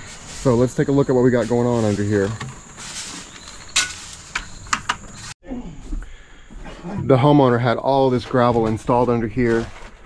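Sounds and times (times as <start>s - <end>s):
person scuffling: 0.0s - 5.4s
plastic buckets knocking: 2.2s - 2.8s.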